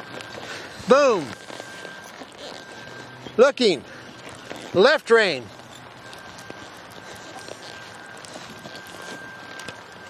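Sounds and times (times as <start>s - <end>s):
horse hooves trotting on dirt: 0.0s - 10.0s
thin high whine: 0.0s - 10.0s.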